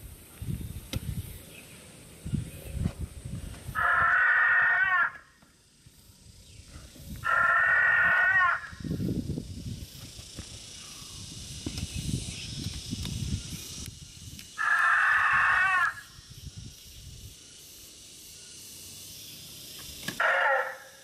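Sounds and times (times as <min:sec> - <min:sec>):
recorded dinosaur calls: 0:03.8 - 0:05.2, 0:07.2 - 0:08.7, 0:14.6 - 0:16.1, 0:20.2 - 0:21.0.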